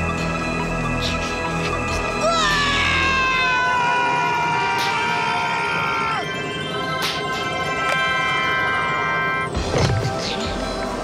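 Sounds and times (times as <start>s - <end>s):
background music: 0.0s - 11.0s
cartoon toddler screaming: 2.2s - 6.2s.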